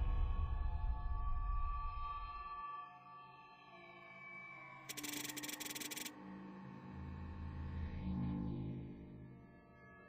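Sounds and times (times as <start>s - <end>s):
ambient electronic music: 4.9s - 6.1s
rapid clicking buzz: 4.9s - 6.1s.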